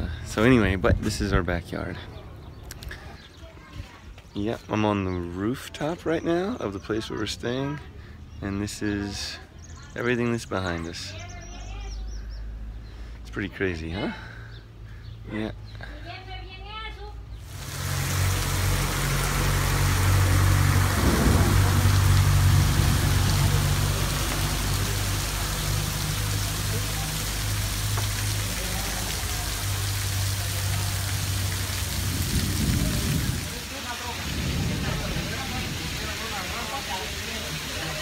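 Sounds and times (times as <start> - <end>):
voices: 15.3 - 38.0
low rumble: 17.4 - 26.8
heavy rain pouring on street: 17.4 - 38.0.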